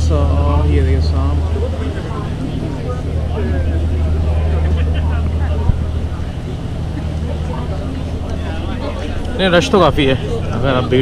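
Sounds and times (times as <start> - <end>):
passengers talking faintly: 0.0 - 11.0
ship engine drone: 0.0 - 11.0.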